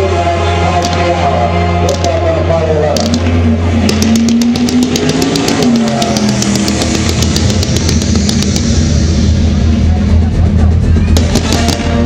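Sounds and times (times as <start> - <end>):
fireworks show music: 0.0 - 12.0
rapid firework shots: 3.0 - 12.0.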